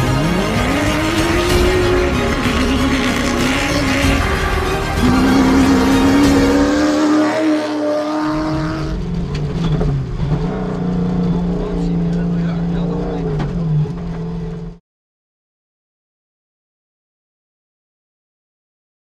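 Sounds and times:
car engine revving hard: 0.0s - 14.8s
engine heard from inside cabin: 8.5s - 14.8s.

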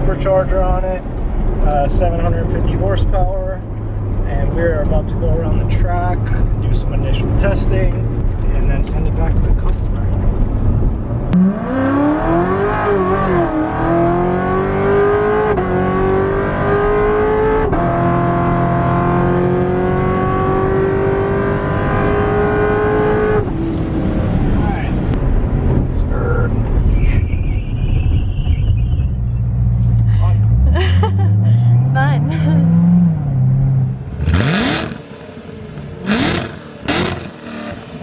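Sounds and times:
car engine accelerating hard: 0.0s - 26.6s, 28.8s - 38.0s.

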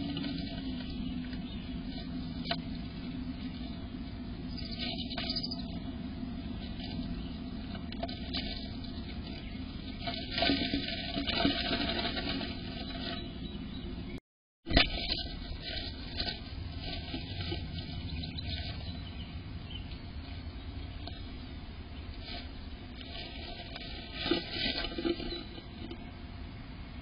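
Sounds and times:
bird rustling nest material: 0.0s - 13.4s, 14.7s - 26.2s.

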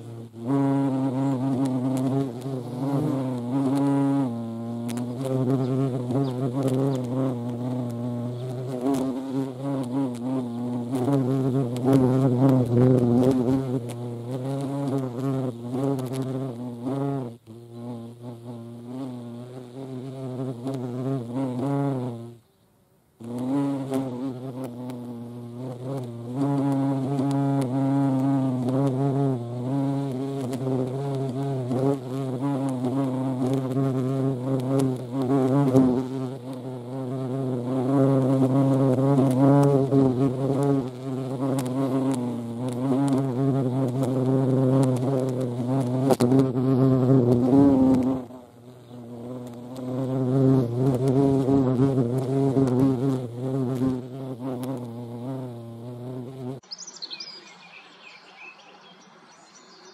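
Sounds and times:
hornet wings buzzing: 0.0s - 22.6s, 23.2s - 59.2s.

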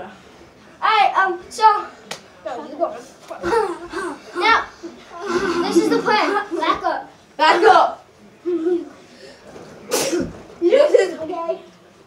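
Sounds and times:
child's voice: 3.4s - 8.9s.

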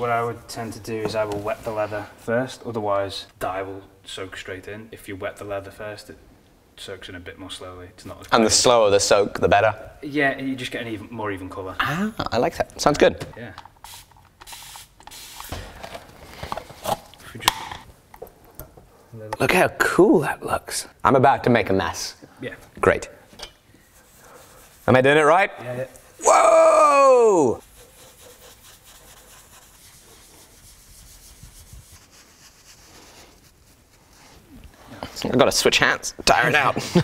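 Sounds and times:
short hiss: 13.8s - 15.8s
pad rubbing on leather: 27.6s - 34.5s.

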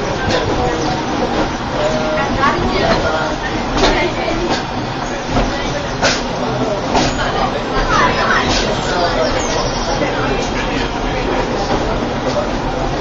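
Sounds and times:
funicular car rumbling on track: 0.0s - 13.0s
passengers chatting: 0.0s - 13.0s.

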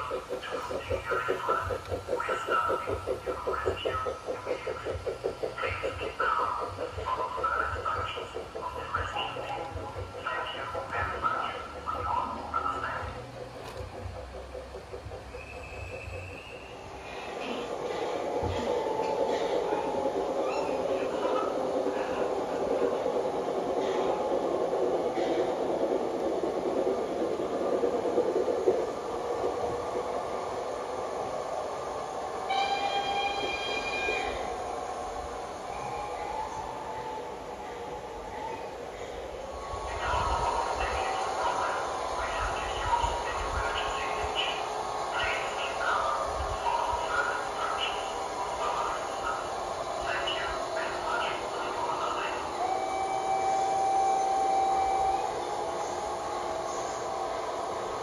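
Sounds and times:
model train wheels clattering: 0.0s - 20.3s
model locomotive whistle: 32.5s - 34.4s, 52.6s - 55.4s.

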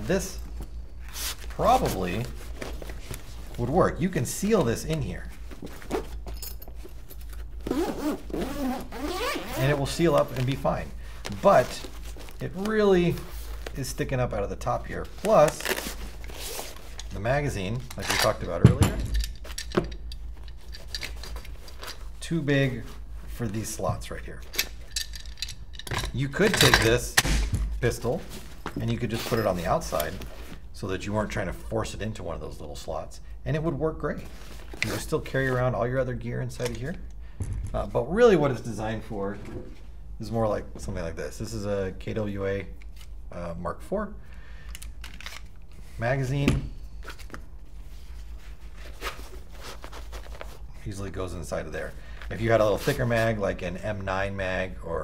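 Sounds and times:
fabric rustling: 0.0s - 17.6s, 47.0s - 50.9s
magazine scraping into nylon pouch: 7.5s - 9.6s, 15.2s - 17.0s, 48.0s - 50.7s.

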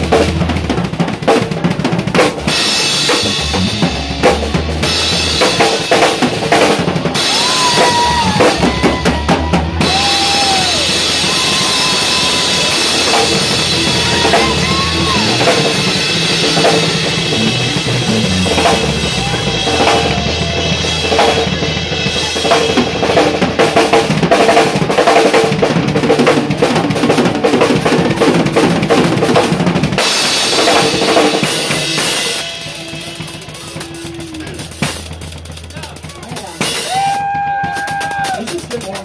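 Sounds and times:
snare drum: 0.0s - 21.6s, 22.4s - 39.0s
bass drum: 0.0s - 39.0s
bass guitar line: 0.0s - 39.0s
live rock band playing: 0.0s - 39.0s
cymbal crashes: 30.0s - 35.7s.

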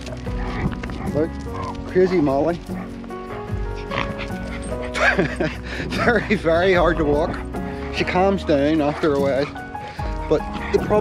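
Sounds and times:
background music: 0.0s - 11.0s
dog whining and yipping: 2.7s - 5.0s.

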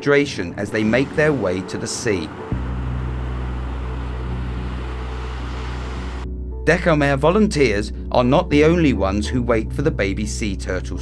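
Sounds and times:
even hiss: 0.7s - 6.2s
low mechanical hum: 2.5s - 6.2s.

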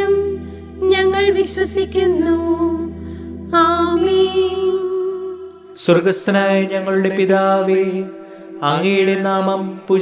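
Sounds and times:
person chanting prayer: 5.8s - 10.0s.

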